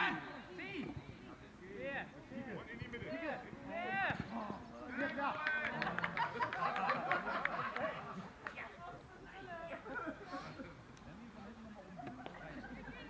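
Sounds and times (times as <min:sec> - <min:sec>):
people shouting and calling out: 0:01.8 - 0:06.0.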